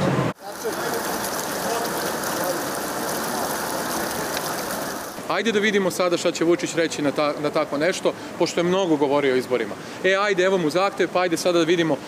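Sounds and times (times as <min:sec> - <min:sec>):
fountain water splashing: 0:00.4 - 0:06.1.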